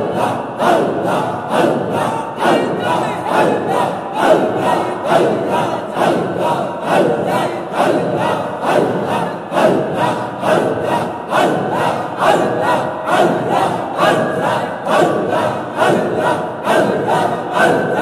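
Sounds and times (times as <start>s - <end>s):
men chanting in unison: 0.0s - 18.0s.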